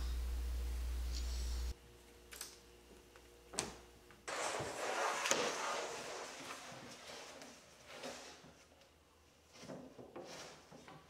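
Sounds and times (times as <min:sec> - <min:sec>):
rustling scrape: 0:04.3 - 0:08.7.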